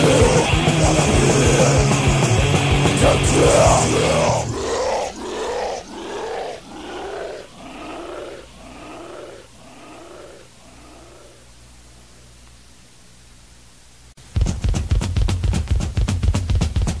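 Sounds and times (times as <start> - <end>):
metal band playing: 0.0 - 5.4
echoing growled vocal shout: 0.0 - 11.5.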